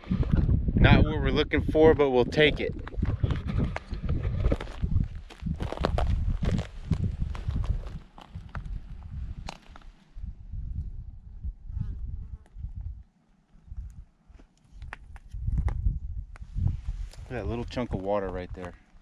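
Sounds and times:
wind rumbling on microphone: 0:00.0 - 0:19.0
footsteps on dry twigs: 0:02.9 - 0:10.0.

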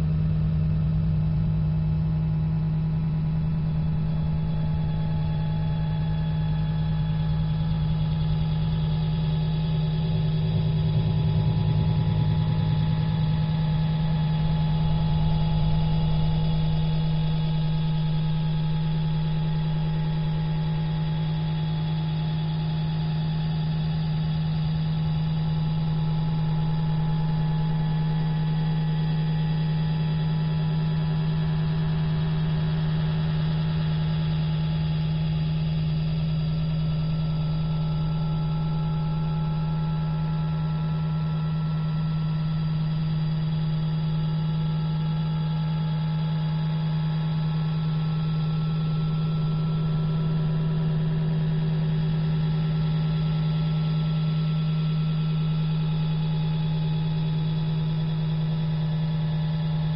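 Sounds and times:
steady low drone: 0:00.0 - 0:59.9.

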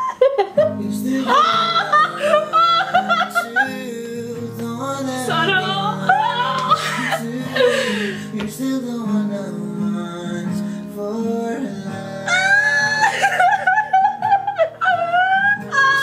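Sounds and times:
guitar: 0:00.0 - 0:16.0
high singing voice: 0:00.6 - 0:09.7, 0:11.0 - 0:13.6, 0:14.8 - 0:16.0.

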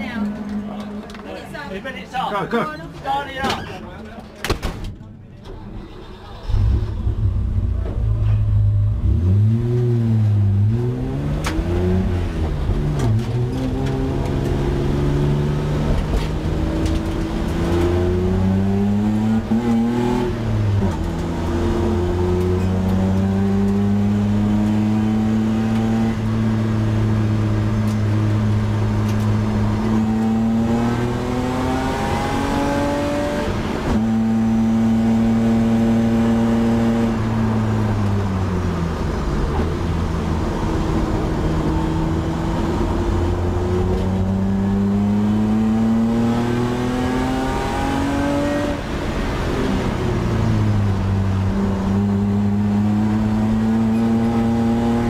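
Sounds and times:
car engine revving: 0:05.8 - 0:55.0.

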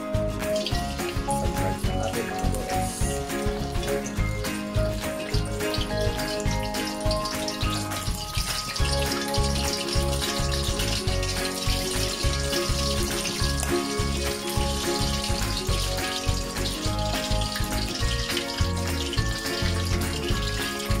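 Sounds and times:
background music with beat: 0:00.0 - 0:21.0
food deep-frying in oil: 0:00.0 - 0:21.0.

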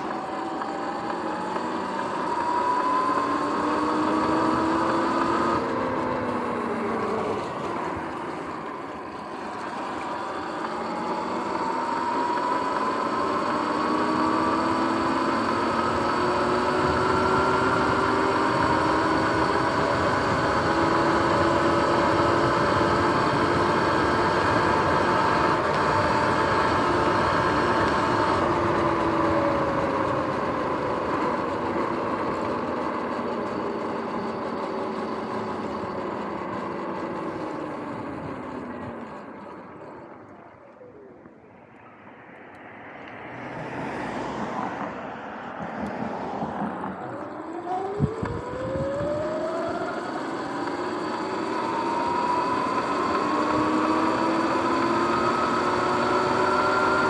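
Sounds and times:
electric motor whine: 0:00.0 - 0:57.0
wind noise: 0:47.8 - 0:49.4.

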